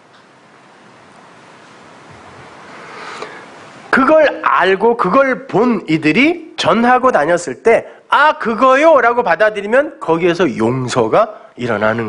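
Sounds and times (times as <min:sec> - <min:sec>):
soft room hiss: 0:00.0 - 0:12.0.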